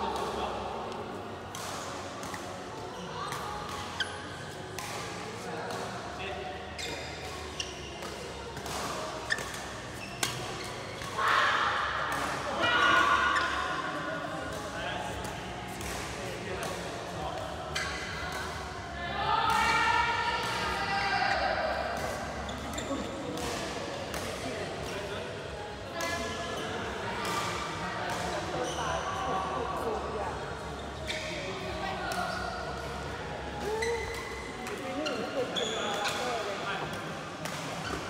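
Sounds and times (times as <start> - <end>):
rackets striking shuttlecock: 7.3 - 11.2.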